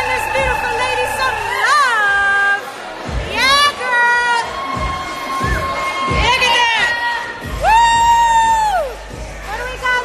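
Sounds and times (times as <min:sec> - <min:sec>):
people shouting and cheering: 0:00.0 - 0:10.0.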